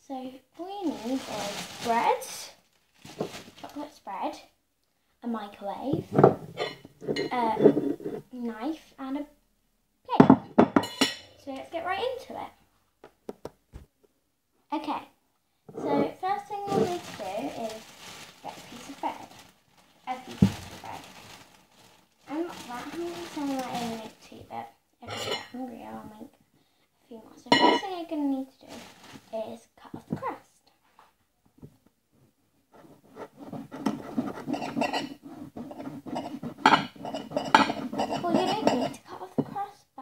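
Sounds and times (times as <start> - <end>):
knife scraping on plate: 6.1 - 8.3, 32.8 - 39.0
girl vocalizing: 15.8 - 17.0
knife sawing through bread crust: 32.8 - 38.2.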